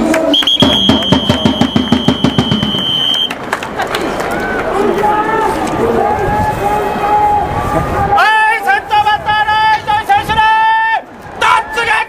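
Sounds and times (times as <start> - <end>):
long whistle blast: 0.3 - 3.3
fast drum beats: 0.5 - 3.0.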